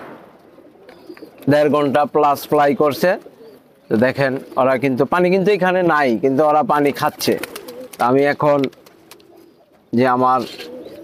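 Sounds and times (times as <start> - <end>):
pigeons cooing: 0.0 - 11.0
man speaking: 1.5 - 3.2, 3.9 - 8.7, 9.9 - 10.6.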